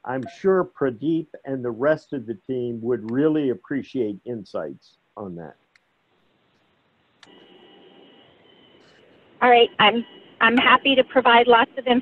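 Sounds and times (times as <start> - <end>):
open-line hiss: 0.1 - 5.5, 7.2 - 11.6
thin high whine: 7.2 - 12.0.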